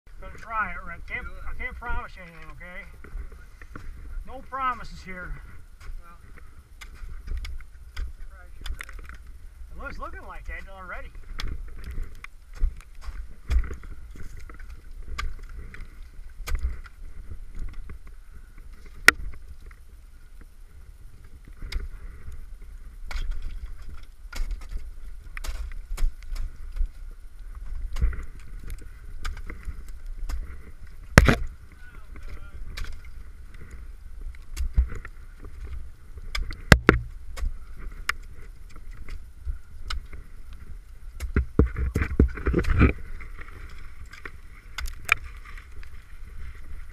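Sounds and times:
ice axe striking ice: 31.1 - 31.5, 36.3 - 37.5.

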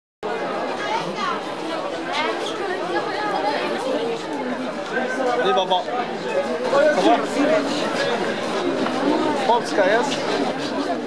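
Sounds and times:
crowd chatter: 0.2 - 11.0.

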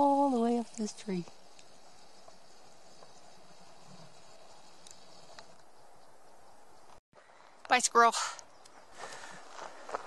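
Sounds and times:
forest ambience hiss: 0.0 - 10.0.

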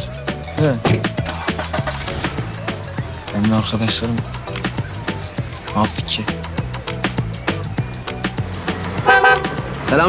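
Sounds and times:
background music with beat: 0.0 - 10.0
car horn toot: 9.0 - 9.6.

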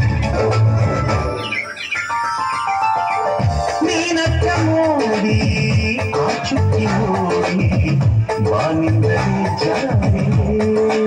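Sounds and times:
held high synth notes: 0.0 - 4.6
dance music beat: 2.6 - 11.0.

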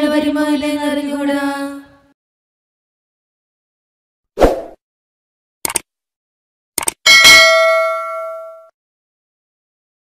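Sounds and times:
bell ding: 7.1 - 8.8.

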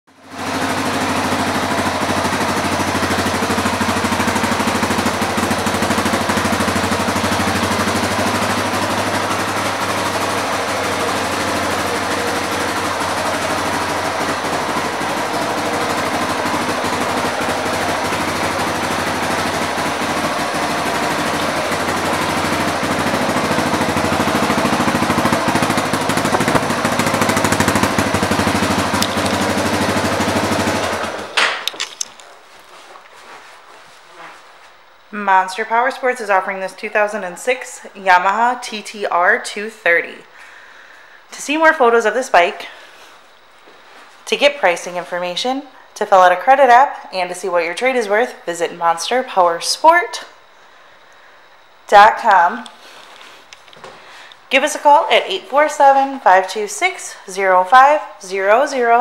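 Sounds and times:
motorcycle engine idling: 0.1 - 32.1.

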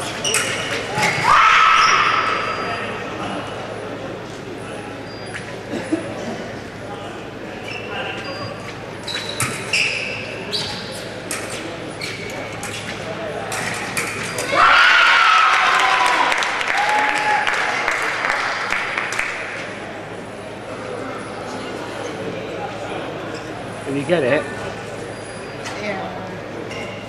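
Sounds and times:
crowd noise: 0.0 - 27.0
loud shout: 1.0 - 2.6, 14.4 - 17.8
fencing foils clashing: 11.3 - 14.5.

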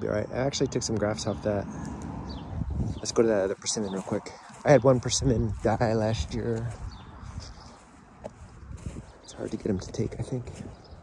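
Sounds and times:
footsteps walking: 1.8 - 11.0.

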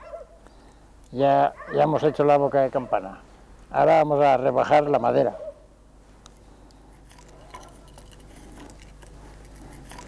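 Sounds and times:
knife scraping wood: 6.9 - 10.0.

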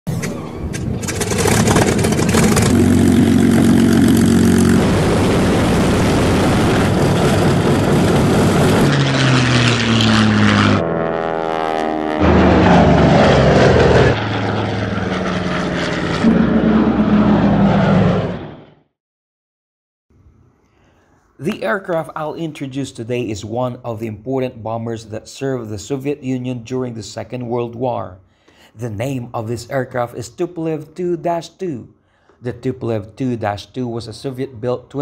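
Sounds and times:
propeller aircraft engine: 0.1 - 18.9.

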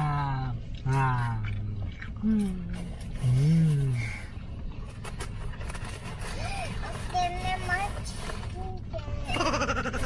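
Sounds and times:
low rumble inside car: 0.0 - 9.7.

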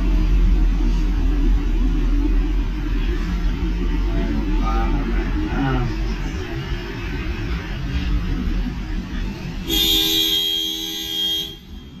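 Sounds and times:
low rumble and street noise: 0.0 - 12.0
car horn honk: 9.6 - 12.0.

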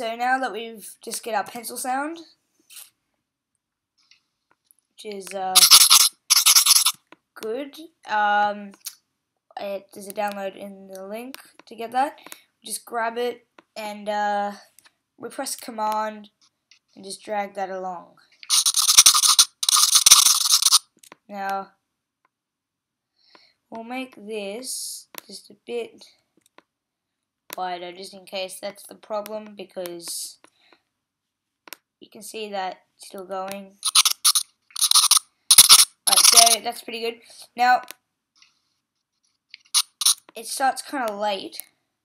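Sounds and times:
pencil scribbling on paper: 5.6 - 6.9, 18.5 - 20.8, 33.8 - 36.6.

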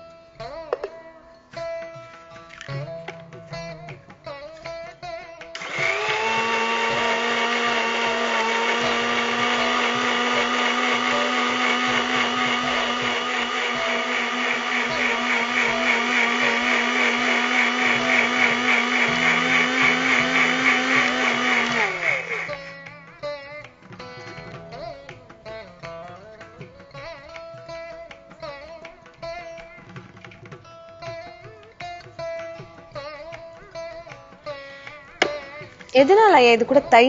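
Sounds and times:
electric mixer grinder running: 5.6 - 22.6.

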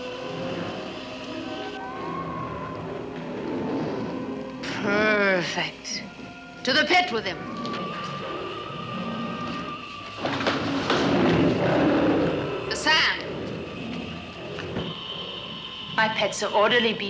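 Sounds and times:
high wavering cry: 0.0 - 5.4, 6.3 - 10.8, 11.6 - 17.0
dramatic soundtrack music: 0.0 - 17.0.

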